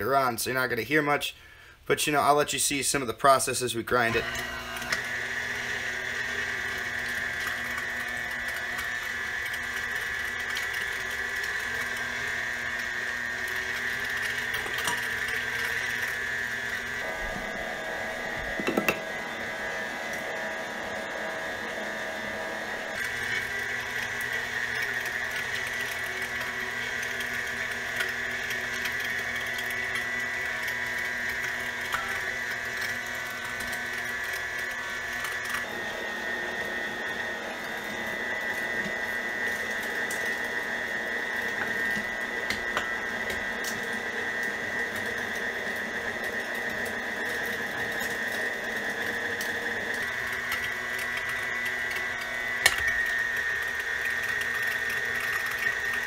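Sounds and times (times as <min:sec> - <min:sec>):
meat grinder motor whine: 0:03.2 - 0:56.0.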